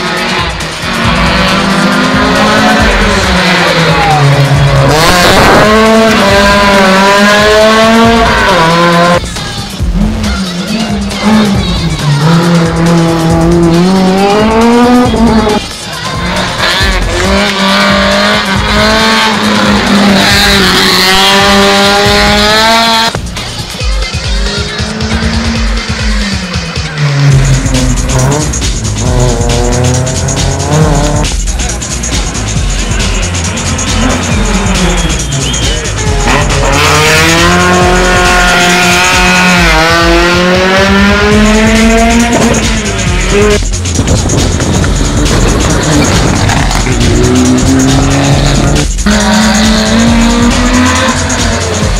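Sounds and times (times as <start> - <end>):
rally car engines revving: 0.0 - 51.9
tyre squeal: 33.9 - 37.1.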